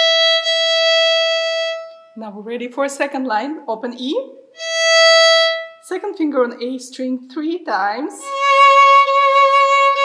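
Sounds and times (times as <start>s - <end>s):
violin bowing a steady note: 0.0s - 2.2s, 4.6s - 6.0s, 8.2s - 10.0s.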